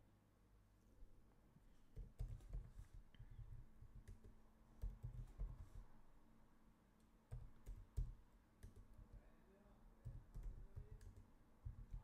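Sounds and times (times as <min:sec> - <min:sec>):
computer keyboard keystrokes: 0:02.0 - 0:05.8, 0:07.3 - 0:09.2, 0:10.0 - 0:12.0.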